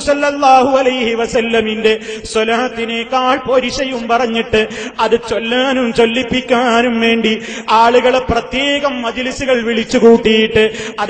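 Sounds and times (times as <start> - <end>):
man preaching: 0.0 - 11.0.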